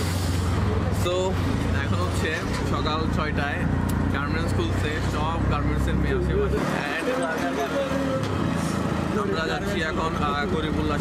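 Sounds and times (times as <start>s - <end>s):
man talking: 0.9s - 8.2s, 9.0s - 11.0s.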